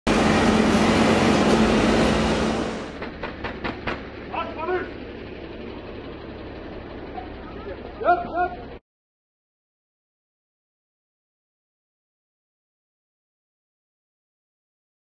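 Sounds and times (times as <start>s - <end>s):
vehicle engine rumble: 0.1s - 8.8s
sharp knocks: 2.9s - 4.1s
men's voices: 4.3s - 5.0s, 7.8s - 8.8s.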